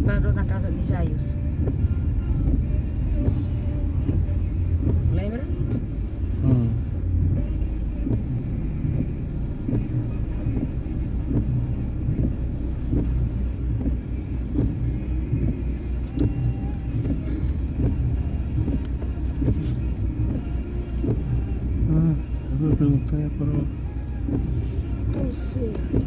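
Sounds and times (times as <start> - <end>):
car engine idling: 0.0 - 26.0.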